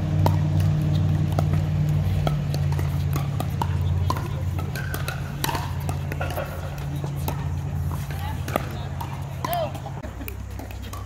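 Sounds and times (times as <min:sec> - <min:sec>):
paddles striking pickleball: 0:00.0 - 0:11.0
steady low hum: 0:00.0 - 0:11.0
voices: 0:00.0 - 0:11.0.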